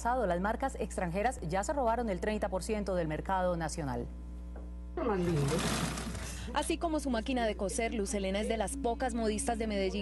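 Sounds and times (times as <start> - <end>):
sewing machine whirring: 5.3 - 6.4.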